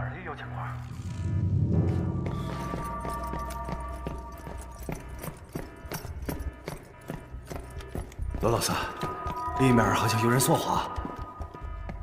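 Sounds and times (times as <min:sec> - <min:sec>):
suspense film soundtrack: 0:00.0 - 0:12.0.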